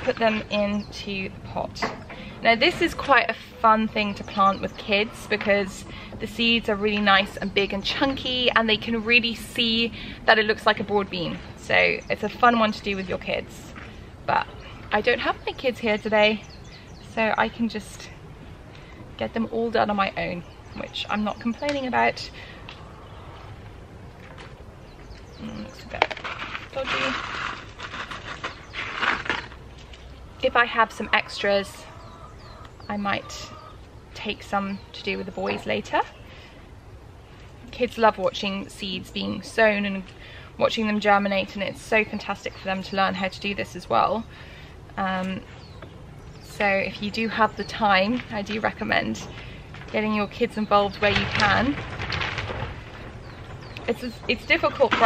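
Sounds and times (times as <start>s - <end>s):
rain on plastic cover: 25.8s - 30.0s, 47.8s - 55.0s
seeds rattling in paper packet: 25.9s - 29.6s.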